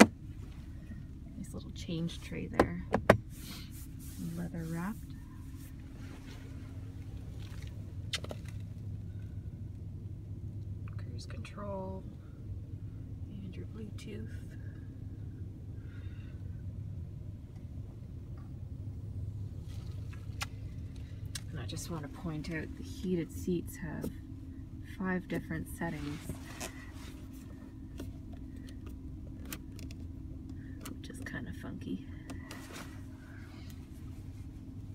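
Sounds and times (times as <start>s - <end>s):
car engine idling: 0.0s - 34.9s.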